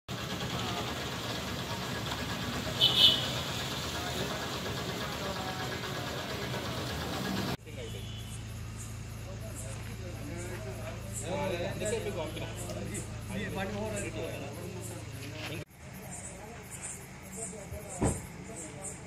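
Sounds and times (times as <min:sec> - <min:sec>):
vehicle engine running: 0:00.1 - 0:19.0.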